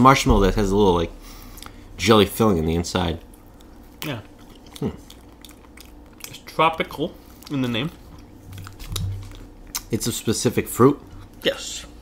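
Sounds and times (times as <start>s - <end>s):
person chewing with wet clicks: 1.5s - 1.8s, 3.0s - 11.5s.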